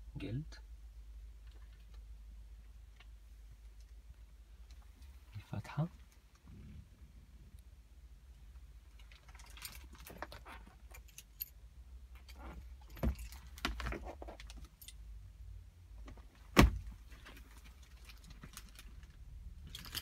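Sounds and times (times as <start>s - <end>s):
light clicks and rattles: 8.4s - 15.0s, 16.0s - 20.0s
keys jingling: 12.2s - 13.6s, 19.6s - 20.0s.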